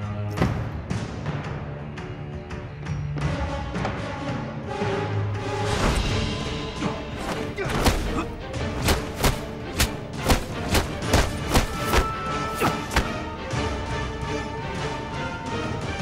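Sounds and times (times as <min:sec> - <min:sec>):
dramatic music with drums: 0:00.0 - 0:16.0.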